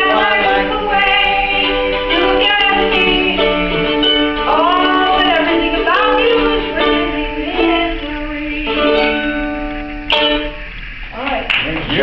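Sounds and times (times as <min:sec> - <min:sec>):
person singing: 0:00.0 - 0:09.2
ukulele playing: 0:00.0 - 0:11.0.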